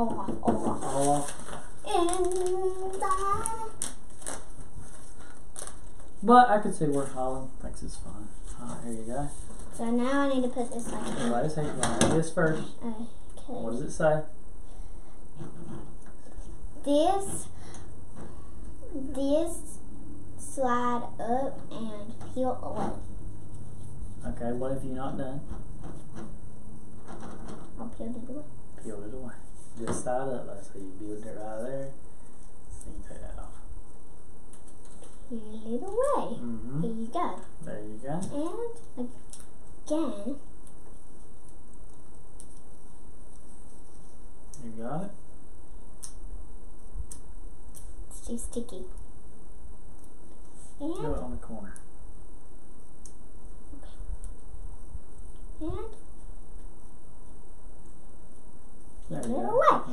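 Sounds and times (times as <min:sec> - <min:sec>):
steady background hiss: 0:00.0 - 0:59.9.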